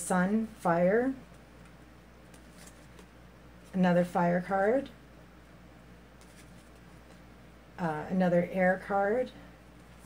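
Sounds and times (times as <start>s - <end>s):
steady low hum: 0.0s - 10.0s
cards rustling: 1.3s - 3.7s, 6.2s - 7.3s.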